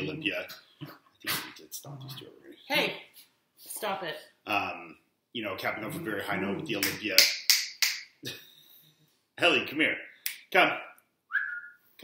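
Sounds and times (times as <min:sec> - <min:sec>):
finger snap: 0:06.8 - 0:08.1
short steady whistle: 0:11.3 - 0:11.8.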